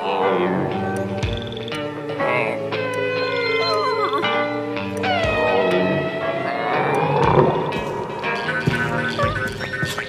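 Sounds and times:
orchestral score: 0:00.0 - 0:10.0
cartoon dog whining: 0:02.3 - 0:04.4.

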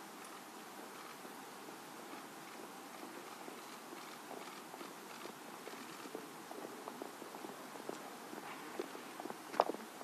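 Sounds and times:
steady outdoor hush: 0:00.0 - 0:10.0
footsteps on stone paving: 0:01.1 - 0:10.0.

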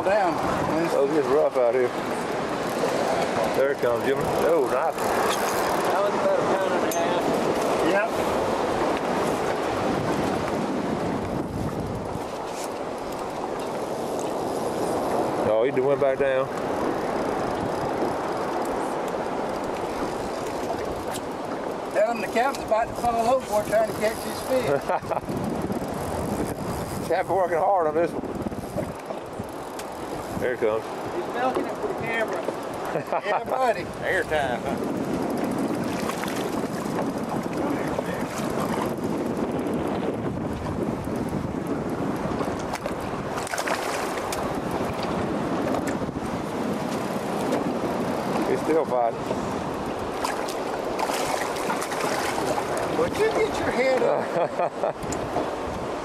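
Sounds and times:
choppy water around boat: 0:00.0 - 0:56.0
wind buffeting microphone: 0:00.0 - 0:56.0.

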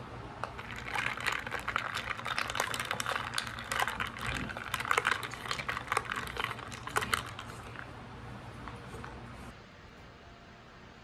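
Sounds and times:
metal straw stirring ice in glass: 0:00.6 - 0:07.9.

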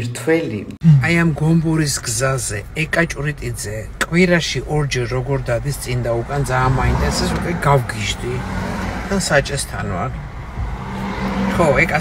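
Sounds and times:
car engine hum: 0:00.8 - 0:12.0
road noise: 0:00.8 - 0:12.0.

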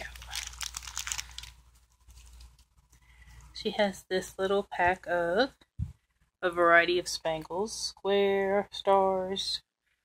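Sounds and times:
plastic packets crinkling: 0:00.0 - 0:03.6.

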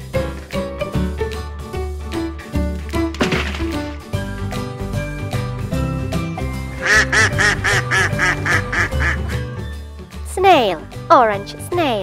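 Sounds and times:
ducks quacking: 0:06.8 - 0:09.4.

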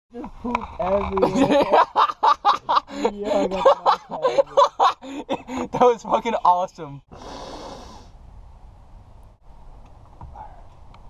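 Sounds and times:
breathy hiss: 0:07.1 - 0:08.2.

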